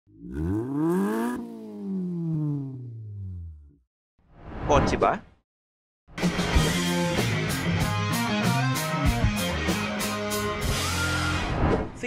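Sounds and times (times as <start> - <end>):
car engine revving and winding down: 0.1 - 3.8.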